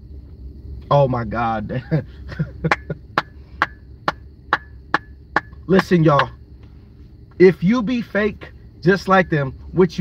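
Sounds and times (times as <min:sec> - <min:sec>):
hand claps: 0:02.7 - 0:06.4.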